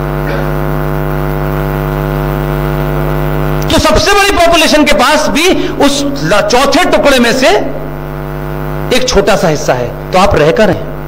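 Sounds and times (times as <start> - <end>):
loud steady low hum: 0.0 - 11.0.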